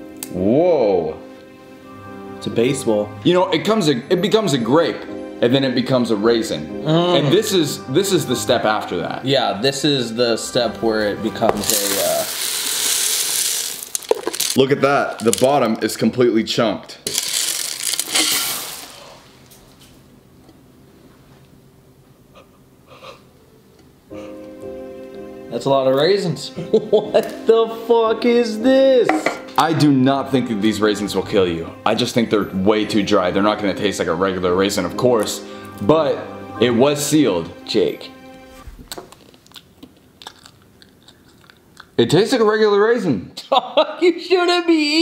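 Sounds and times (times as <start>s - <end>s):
raisins rattling onto stone: 11.6s - 15.6s, 17.1s - 18.9s
person chewing raisins: 17.1s - 18.9s, 38.9s - 42.0s.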